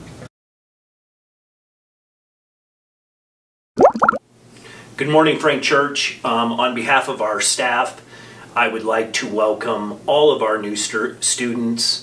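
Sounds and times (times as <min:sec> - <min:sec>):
rising bloop sound effects: 0:03.8 - 0:04.2.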